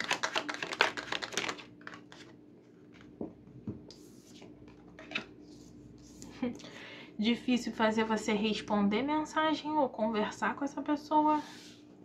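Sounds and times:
cards being shuffled: 0.0s - 3.2s.

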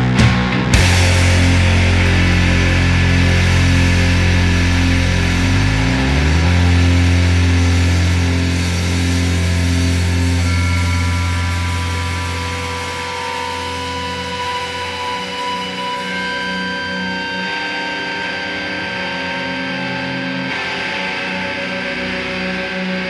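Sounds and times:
distorted guitar and bass drone: 0.0s - 23.0s
high guitar feedback tones: 0.0s - 23.0s.

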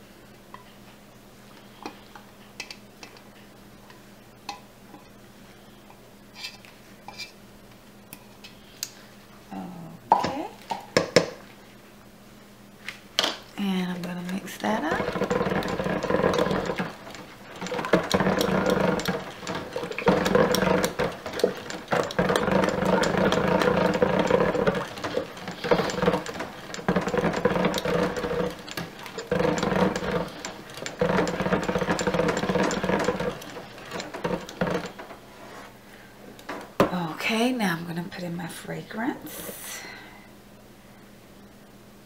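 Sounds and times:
stick blender motor humming: 13.9s - 35.5s.

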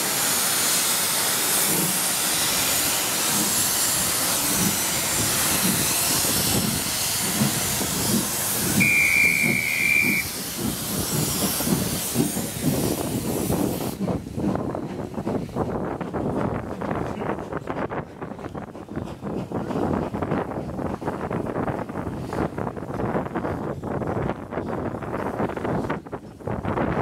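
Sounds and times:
loud hiss of escaping steam: 0.0s - 14.2s
steam locomotive exhaust beats: 0.0s - 27.0s
steam whistle blast: 8.8s - 10.4s.

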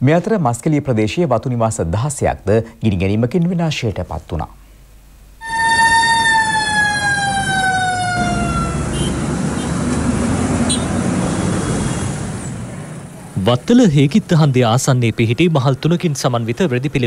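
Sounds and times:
siren wailing: 5.4s - 9.5s
street traffic din: 5.4s - 17.0s.

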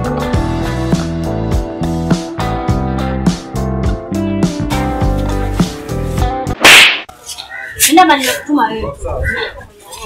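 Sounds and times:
background music: 0.0s - 7.0s
swishing whip crack: 6.6s - 7.1s
woman speaking: 7.8s - 9.0s.

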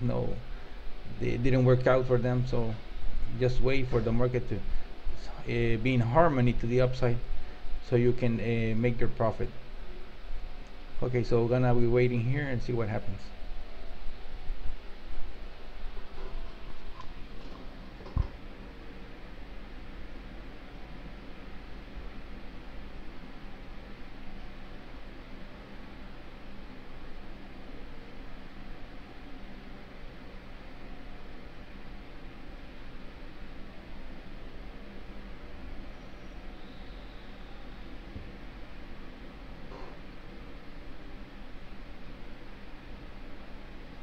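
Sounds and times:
faint hum: 0.0s - 44.0s
microphone background hiss: 0.0s - 44.0s.

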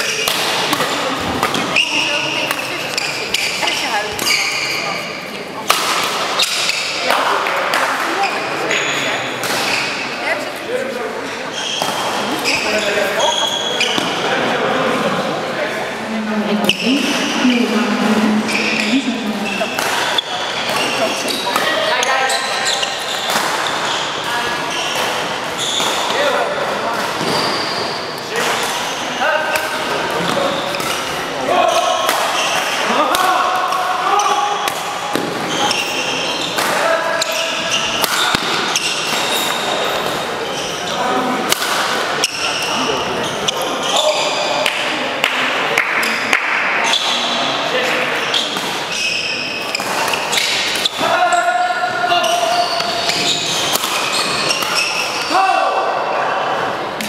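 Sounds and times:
racket hitting shuttlecock: 0.0s - 1.8s, 5.6s - 8.2s, 9.4s - 10.0s, 19.6s - 22.0s, 29.5s - 31.2s, 32.0s - 33.9s, 34.6s - 35.8s, 36.6s - 40.2s, 41.5s - 42.5s, 49.6s - 51.1s, 52.7s - 55.3s
shoes squeaking on court floor: 0.0s - 5.4s, 8.1s - 10.2s, 11.3s - 14.3s, 18.0s - 32.9s, 34.2s - 41.1s, 42.2s - 44.5s, 48.2s - 55.3s
voices in echoing hall: 0.0s - 57.0s.

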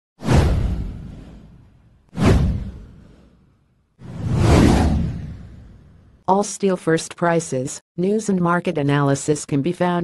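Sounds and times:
deep whoosh: 0.2s - 6.2s.

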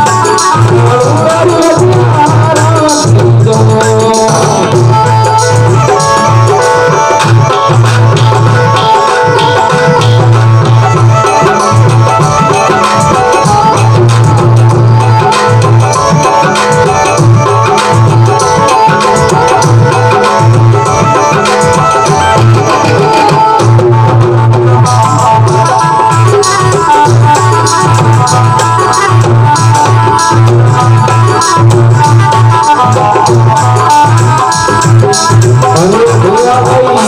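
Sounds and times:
harmonium chords: 0.0s - 37.0s
low drum beat: 0.0s - 37.0s
tabla-style drumming: 0.0s - 37.0s.

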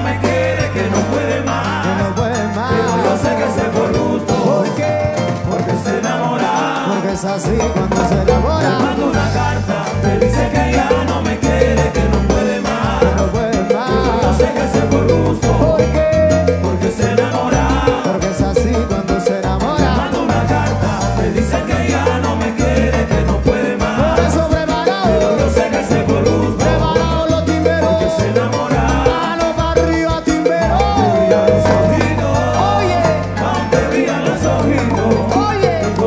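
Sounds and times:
live salsa band playing: 0.0s - 36.0s.

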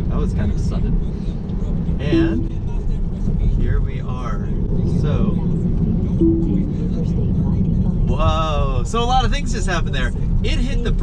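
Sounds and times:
road and tyre rumble: 0.0s - 11.0s
short low tone: 2.1s - 2.6s, 6.2s - 7.2s.

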